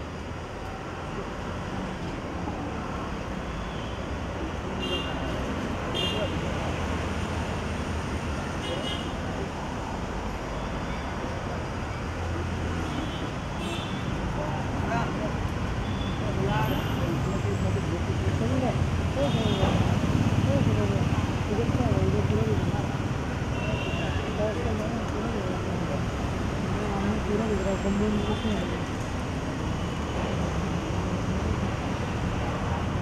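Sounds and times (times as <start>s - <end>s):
traffic rumble: 0.0s - 33.0s
voices murmuring: 14.0s - 33.0s.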